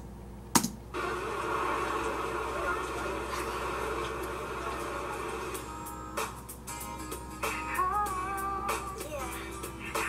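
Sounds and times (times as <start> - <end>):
music video soundtrack: 1.0 - 10.0.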